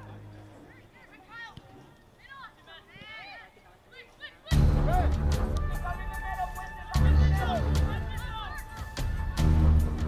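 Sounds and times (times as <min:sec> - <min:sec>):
distant voices shouting: 0:00.0 - 0:09.8.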